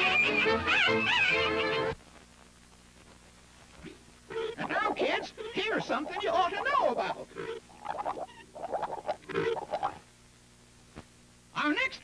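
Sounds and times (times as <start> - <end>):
faint low hum: 1.9 - 12.0.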